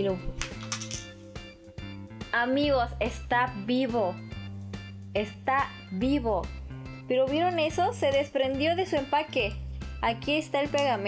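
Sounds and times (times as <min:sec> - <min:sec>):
background music: 0:00.0 - 0:11.0
small object clattering on floor: 0:00.3 - 0:01.1.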